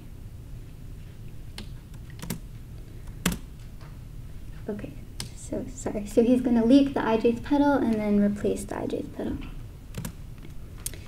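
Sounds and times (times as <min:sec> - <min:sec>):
sharp clicks: 0:09.9 - 0:10.2.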